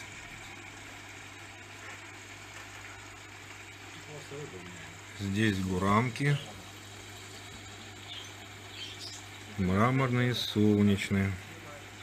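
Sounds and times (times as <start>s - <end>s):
aquarium air pump hum: 0.0s - 12.0s.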